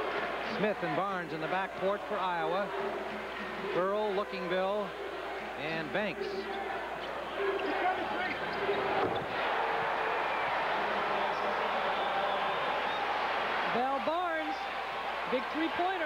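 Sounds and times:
arena crowd noise: 0.0s - 16.0s.

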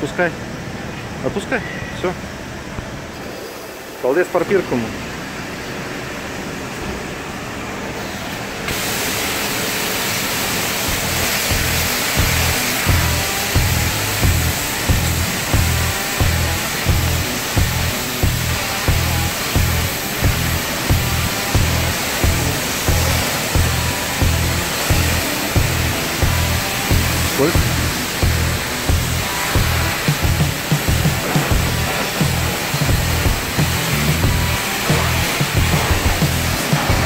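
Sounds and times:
pressure washer spraying water: 3.2s - 6.5s, 7.8s - 37.0s
music with bass beat: 10.9s - 37.0s.

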